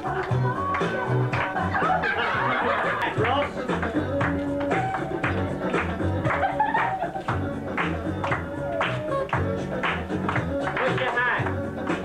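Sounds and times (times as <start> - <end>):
people laughing: 0.0 - 3.6, 6.1 - 7.7
music playing: 0.0 - 12.0.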